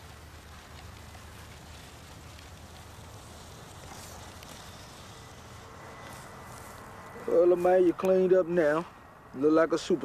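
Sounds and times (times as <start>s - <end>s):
faint even hiss: 0.0s - 10.0s.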